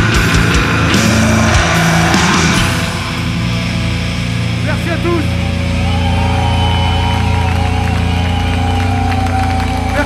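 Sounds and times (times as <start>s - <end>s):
distorted guitars and bass chord: 0.0s - 10.0s
low drone: 0.0s - 10.0s.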